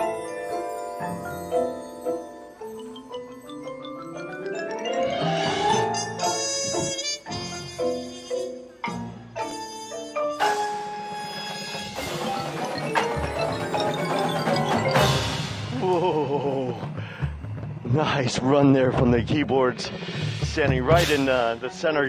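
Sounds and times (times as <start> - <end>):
loud percussion crashes: 10.4 - 21.8.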